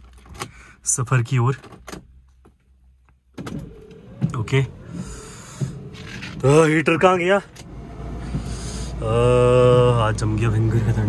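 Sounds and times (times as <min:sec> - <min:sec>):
low car interior hum: 0:00.0 - 0:11.0.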